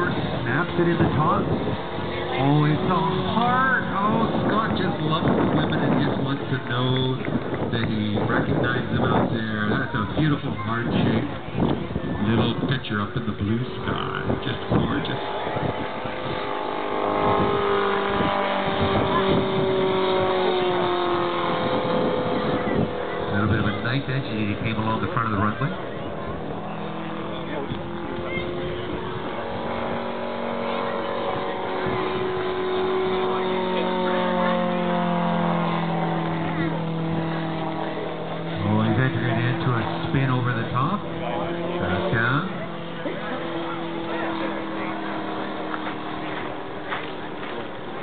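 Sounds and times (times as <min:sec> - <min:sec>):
model plane radial engine: 0:00.0 - 0:48.0.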